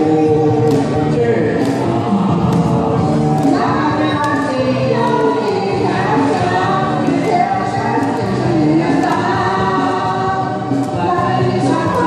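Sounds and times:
man and woman singing duet: 3.4 - 12.0.

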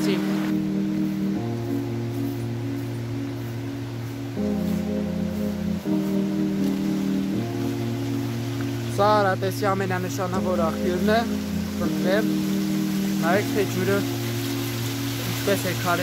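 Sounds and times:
background music with held chords: 0.0 - 16.0.

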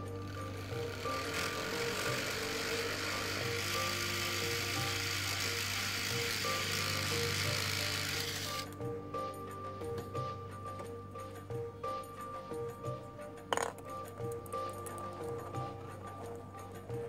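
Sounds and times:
motorized top starter whirring: 0.0 - 8.9
background music: 0.0 - 17.0.

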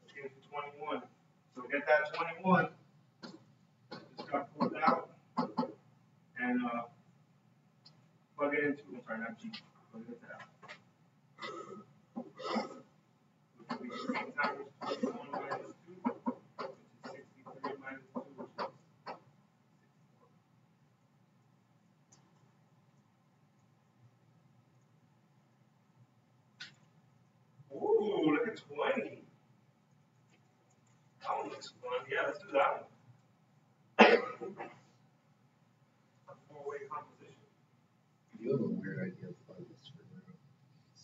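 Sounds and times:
person speaking: 0.0 - 5.8, 13.6 - 19.2, 27.7 - 29.4, 30.4 - 33.0
person coughing: 11.4 - 12.9, 13.7 - 15.8, 34.0 - 34.8.

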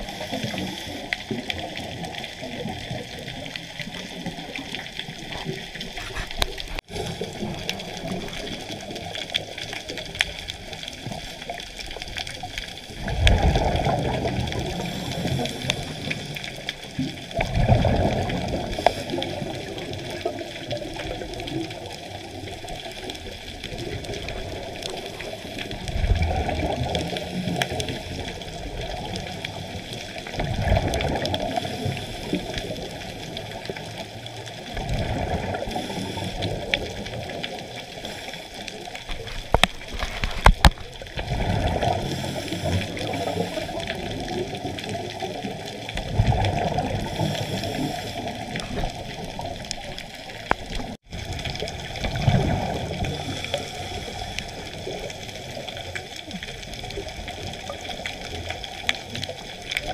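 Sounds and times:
regulator exhaled bubbles gurgling: 0.0 - 59.9.

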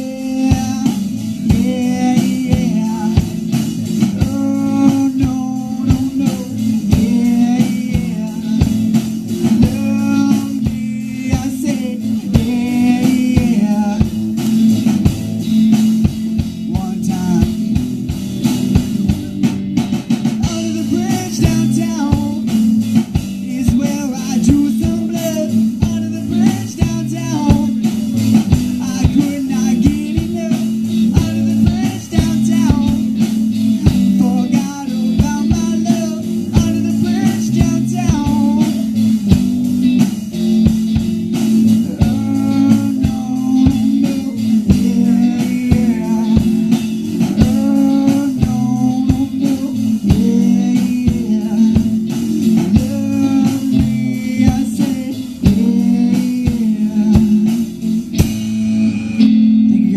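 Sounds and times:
drum beat: 0.0 - 59.3
bass line: 0.0 - 59.9
live rock band playing: 0.0 - 59.9.

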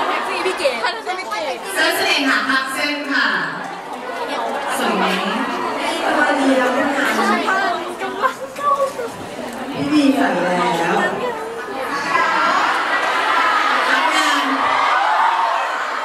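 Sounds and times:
women talking over microphones: 0.0 - 12.7, 13.7 - 14.8
crowd chatter: 0.0 - 16.0.

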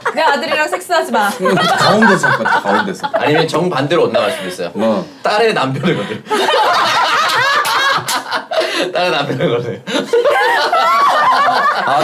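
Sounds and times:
people laughing: 0.0 - 5.0, 5.6 - 12.0.

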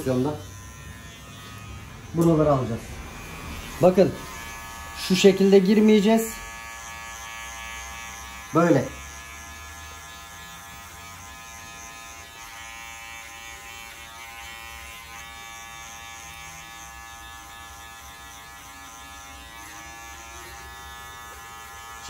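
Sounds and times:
electric hair clipper buzzing: 0.0 - 22.0.

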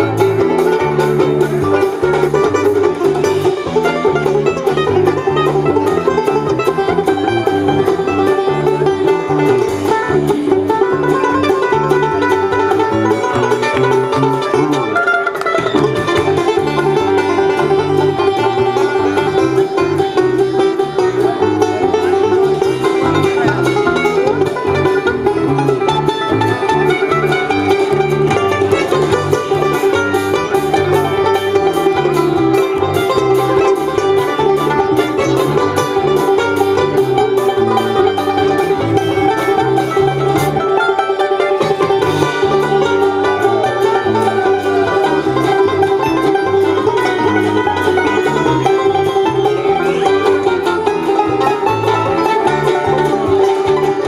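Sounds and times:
banjo: 0.0 - 54.0
bluegrass band playing: 0.0 - 54.0.

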